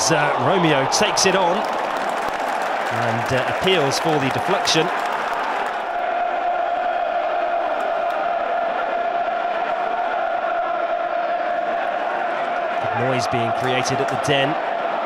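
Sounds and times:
stadium crowd noise: 0.0 - 15.0
crowd chanting in unison: 5.0 - 15.0.

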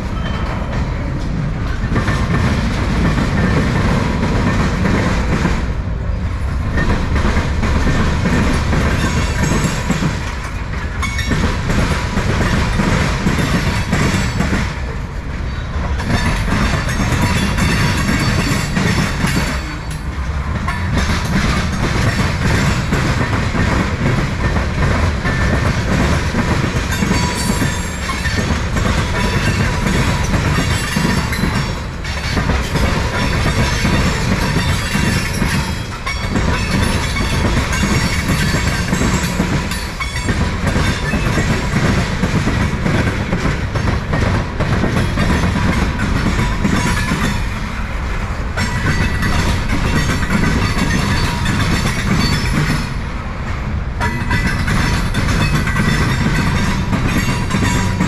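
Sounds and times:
train wheels clattering on rails: 0.0 - 58.0.

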